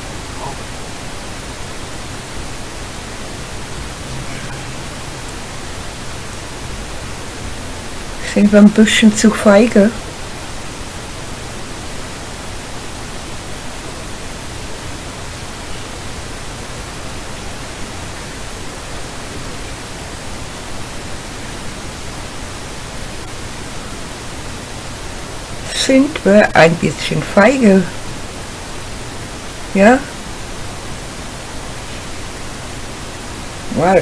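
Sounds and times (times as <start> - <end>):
static-like hiss: 0.0 - 34.0.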